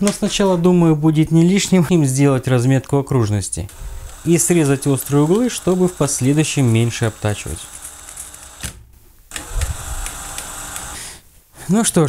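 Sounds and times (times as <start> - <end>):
cordless drill running: 3.7 - 11.2.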